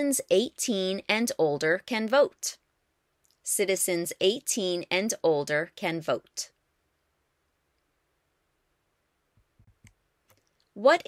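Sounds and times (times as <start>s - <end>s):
person speaking: 0.0s - 2.6s, 3.4s - 6.6s, 10.8s - 11.0s.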